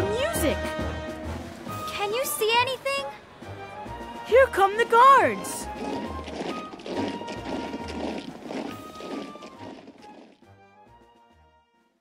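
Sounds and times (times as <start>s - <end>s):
military marching band music: 0.0s - 11.6s.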